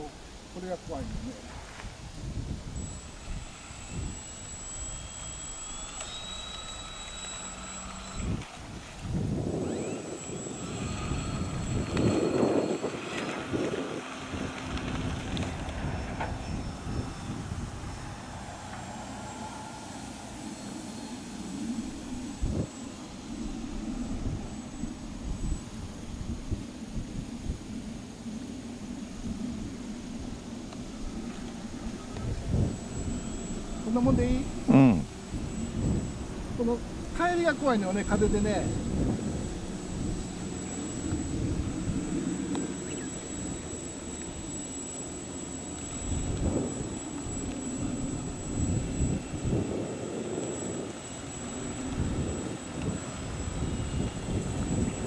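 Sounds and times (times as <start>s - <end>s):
model plane motor whine: 0.0s - 55.0s.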